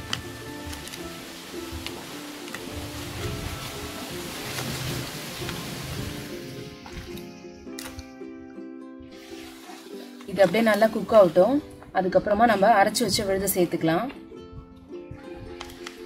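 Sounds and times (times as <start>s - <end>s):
steady hiss: 0.0s - 7.8s
sustained background music: 0.0s - 16.0s.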